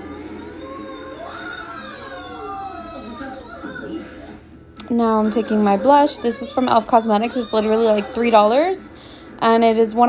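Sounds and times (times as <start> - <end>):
television voice: 0.0 - 10.0.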